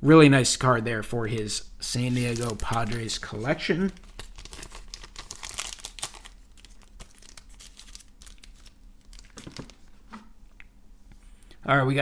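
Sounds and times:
plastic wrapping crinkling: 1.9 - 9.9.

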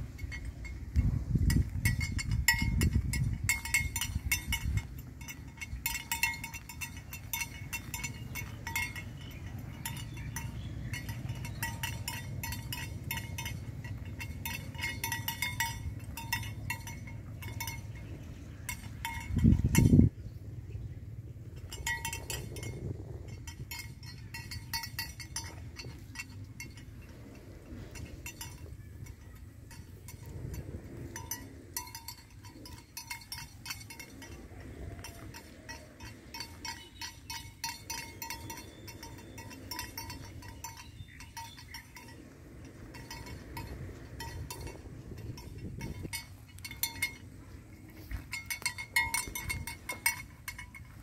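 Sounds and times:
animal bells clinking: 0.0 - 51.0
wind rumble: 0.0 - 51.0.

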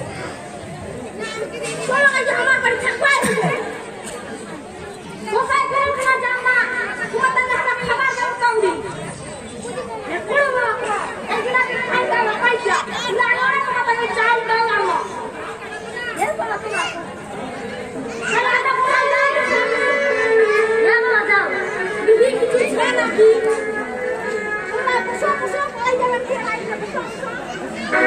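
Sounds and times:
people talking: 0.0 - 28.0.

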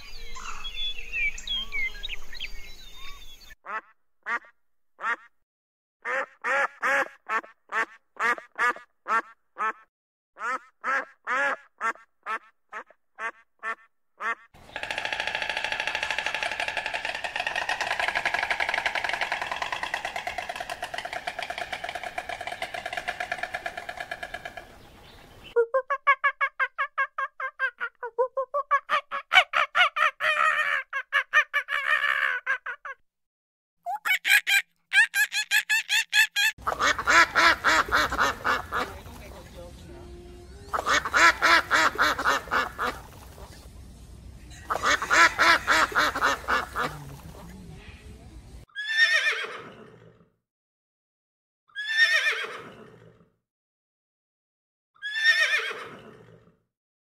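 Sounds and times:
ducks quacking: 6.0 - 14.5, 36.6 - 43.6, 44.5 - 47.5.

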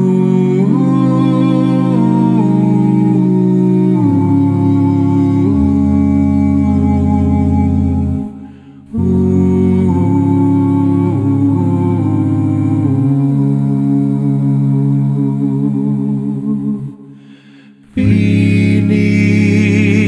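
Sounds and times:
vocal group singing a hymn: 0.0 - 20.0.

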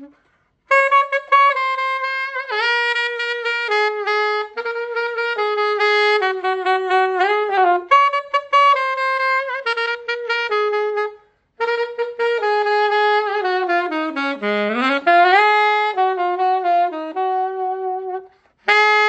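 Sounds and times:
alto saxophone solo: 0.0 - 19.0.

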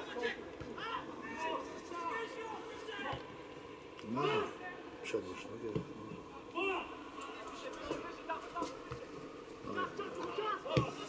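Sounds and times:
indistinct talk: 0.0 - 11.0.

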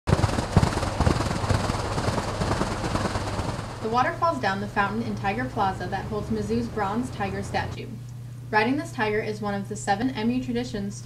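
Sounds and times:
low thumps: 0.1 - 4.0.

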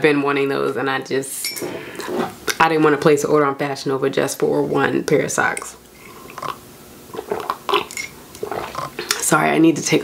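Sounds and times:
person sipping and swallowing: 5.9 - 9.2.

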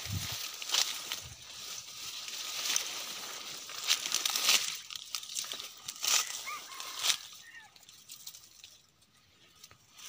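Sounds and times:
rustling of dry brush: 0.0 - 10.0.

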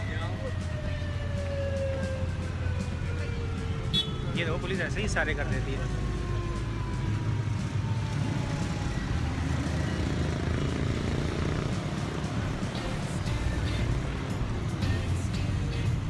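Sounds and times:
music: 0.0 - 16.0
passing cars and motorcycles: 0.0 - 16.0.

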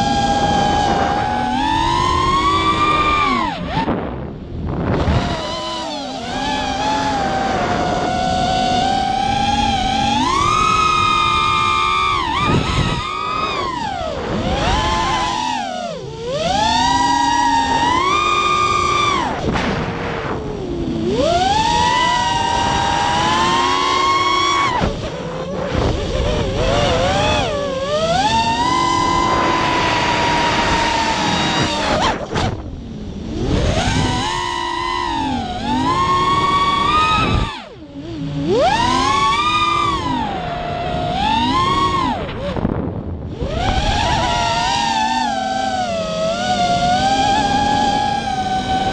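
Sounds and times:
quadcopter motors whining: 0.0 - 48.9.

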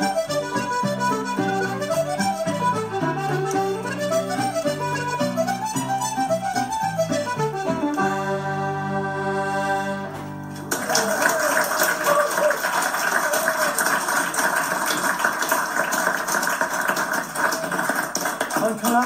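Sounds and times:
accordion fiddle and keyboard chord: 0.0 - 10.6
audience clapping: 10.5 - 19.0.

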